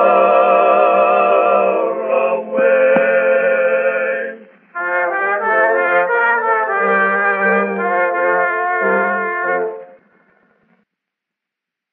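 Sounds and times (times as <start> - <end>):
brass band chord: 4.8 - 10.0.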